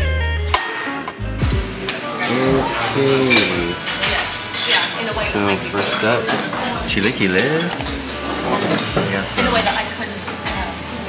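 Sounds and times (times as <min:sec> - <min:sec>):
background music: 0:00.0 - 0:11.0
cutlery clinking on plates: 0:01.9 - 0:10.8.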